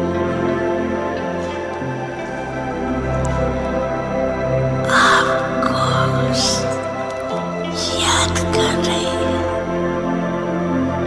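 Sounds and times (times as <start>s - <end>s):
calm meditation music: 0.0s - 11.0s.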